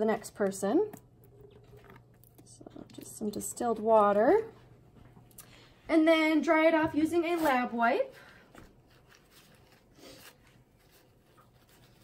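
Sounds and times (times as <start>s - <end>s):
paper wipe rubbing: 8.8s - 12.0s.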